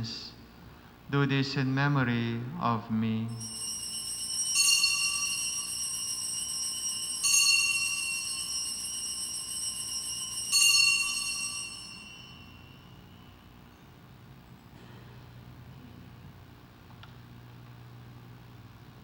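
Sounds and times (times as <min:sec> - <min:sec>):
altar bells ringing: 0:03.3 - 0:14.0.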